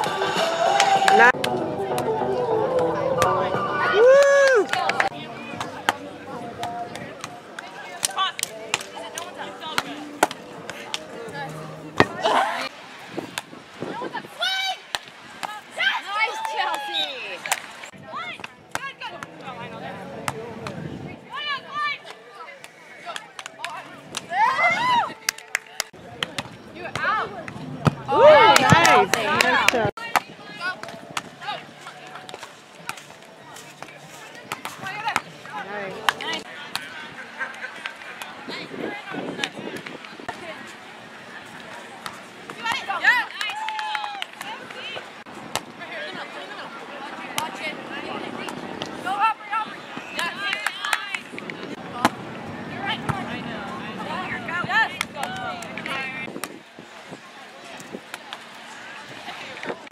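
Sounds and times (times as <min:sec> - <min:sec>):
volleyball slaps: 0:14.9 - 0:15.6, 0:25.3 - 0:31.3, 0:50.2 - 0:52.2
hands slapping volleyball: 0:27.8 - 0:31.3.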